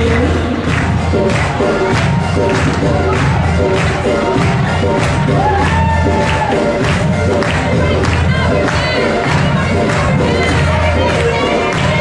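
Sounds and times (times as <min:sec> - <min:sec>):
crowd cheering: 0:00.0 - 0:09.4
loud music with steady beat: 0:00.0 - 0:12.0.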